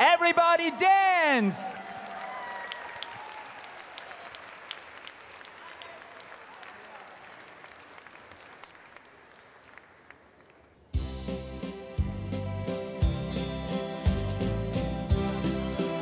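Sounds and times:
crowd applauding: 0.8s - 10.9s.

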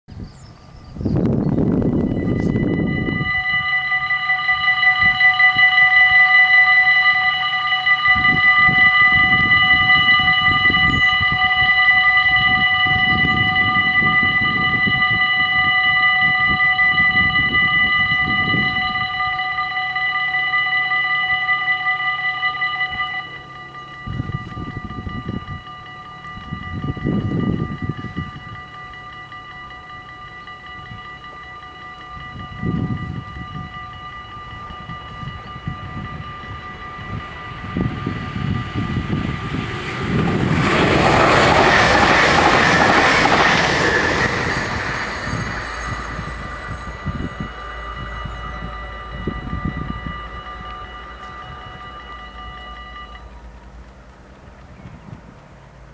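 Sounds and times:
electric train passing: 0.1s - 55.9s
level-crossing bells ringing: 1.3s - 54.3s.

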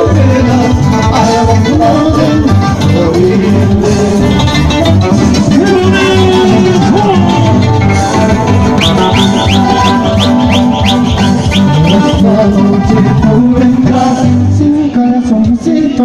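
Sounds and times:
folk band playing: 0.0s - 14.4s
acoustic guitars strummed: 0.0s - 14.6s
quick high rising notes: 8.0s - 12.4s.

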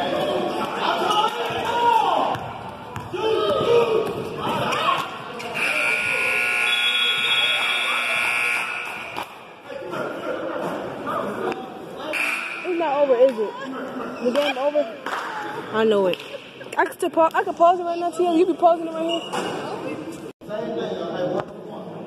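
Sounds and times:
scoreboard buzzer long tone: 5.6s - 9.2s, 12.2s - 12.9s.

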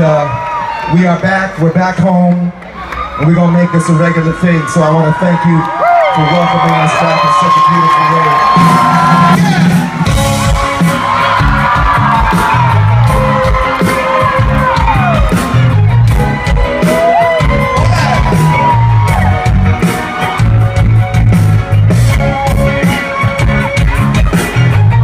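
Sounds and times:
crowd whooping: 0.0s - 1.3s, 2.6s - 25.0s
live rock band playing: 6.9s - 25.0s.

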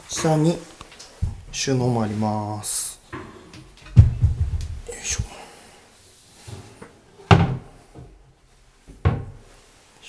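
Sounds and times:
cabinet doors shutting: 7.3s - 7.8s, 8.9s - 9.4s.

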